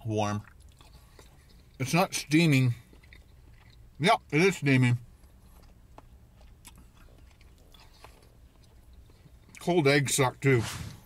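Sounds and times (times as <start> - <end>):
low steady hum: 0.0 - 11.0
person chewing food: 0.4 - 4.3, 5.0 - 9.7.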